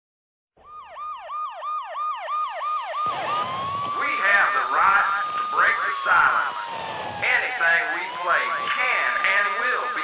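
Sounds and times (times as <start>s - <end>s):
police siren: 0.6s - 10.0s.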